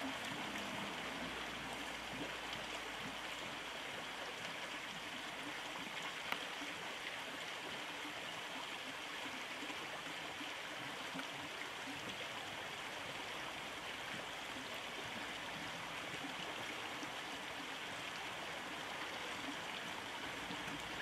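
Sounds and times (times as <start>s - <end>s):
river water running over stones: 0.0s - 21.0s.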